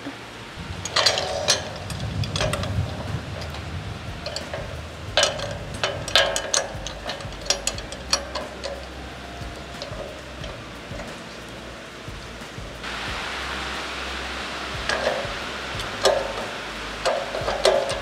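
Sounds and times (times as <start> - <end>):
steady hiss: 0.0 - 18.0
sharp metal clicks and knocks: 0.8 - 12.9, 14.9 - 18.0.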